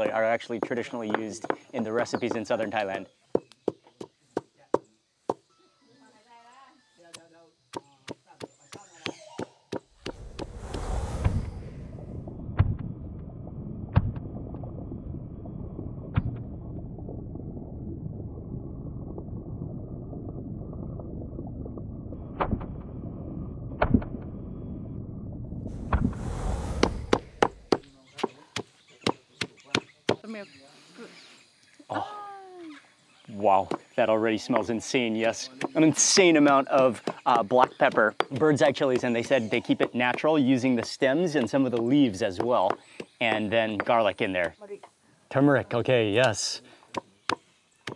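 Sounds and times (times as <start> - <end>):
pestle knocking in stone mortar: 0.0 - 2.7, 36.4 - 43.9
muffled low rumble: 9.9 - 28.0.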